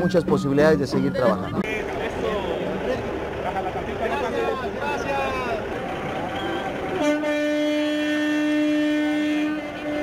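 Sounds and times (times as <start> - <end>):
steady horn-like tone: 7.0 - 10.0.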